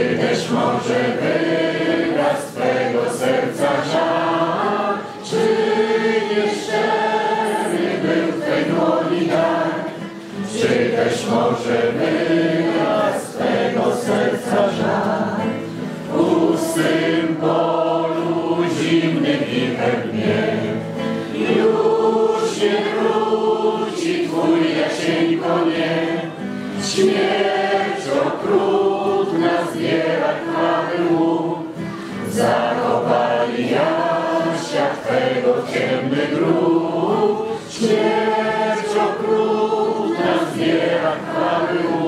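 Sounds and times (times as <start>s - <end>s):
choir singing slow song: 0.0s - 42.0s.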